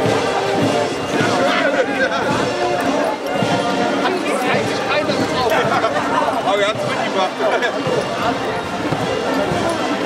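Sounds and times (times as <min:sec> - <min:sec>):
footsteps on paving stones: 0:00.0 - 0:10.0
people chattering: 0:00.0 - 0:10.0.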